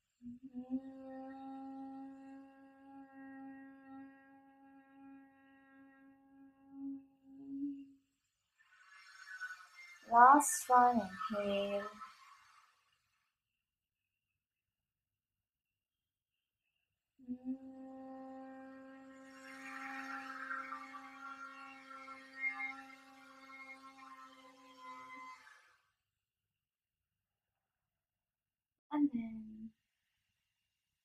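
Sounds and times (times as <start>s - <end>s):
woman humming steady note: 0.2s - 8.0s, 17.2s - 24.0s.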